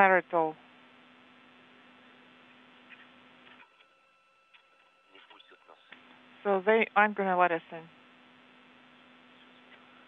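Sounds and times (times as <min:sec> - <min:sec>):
faint hum and hiss: 0:00.0 - 0:10.0.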